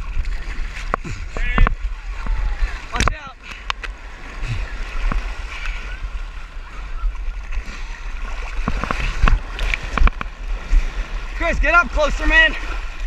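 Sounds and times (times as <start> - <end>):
surf splashing: 0.0 - 13.0
water rumbling against microphone: 0.0 - 13.0.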